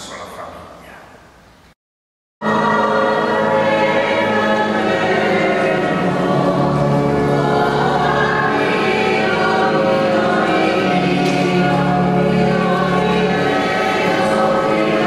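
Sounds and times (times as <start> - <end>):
choir singing held chords: 2.4 - 15.0.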